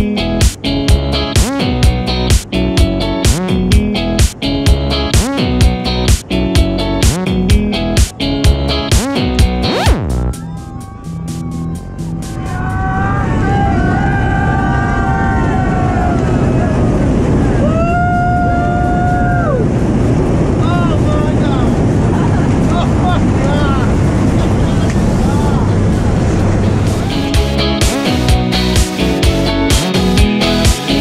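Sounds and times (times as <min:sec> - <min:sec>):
music: 0:00.0 - 0:13.3, 0:26.6 - 0:31.0
wind noise: 0:00.2 - 0:27.7
people whooping and calling out: 0:10.0 - 0:19.7
airplane engine: 0:15.0 - 0:27.9.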